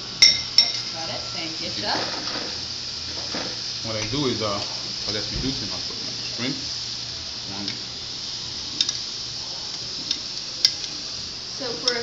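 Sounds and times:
sizzling in a frying pan: 0.0 - 12.0.

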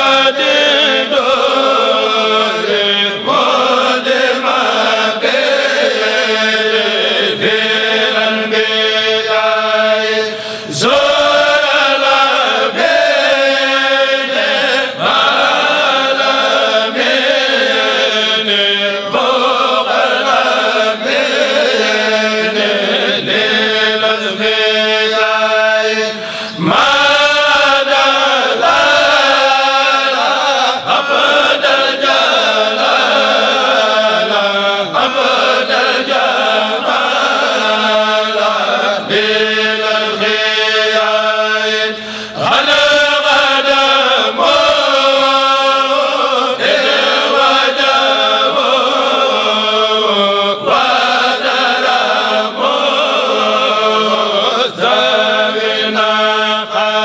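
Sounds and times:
men chanting into microphones: 0.0 - 57.0.

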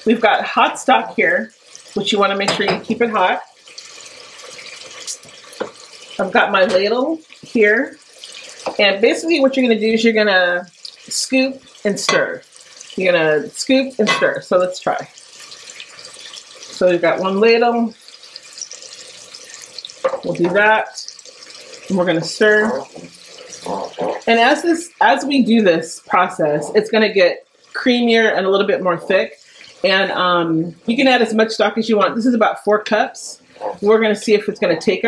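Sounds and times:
rice sizzling in a pot: 0.0 - 30.4.

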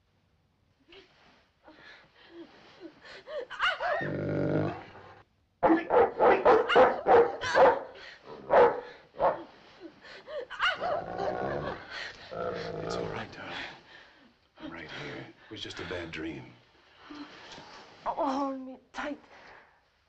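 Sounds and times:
dog barking: 5.6 - 9.5, 10.6 - 11.3.

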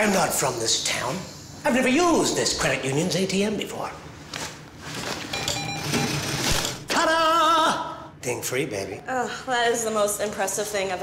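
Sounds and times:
cash machine whirring and rattling: 4.8 - 6.9.

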